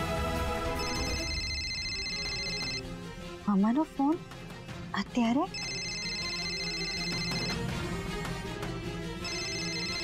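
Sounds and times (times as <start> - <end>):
phone ringtone: 0.8 - 2.8, 5.5 - 7.7, 9.2 - 10.0.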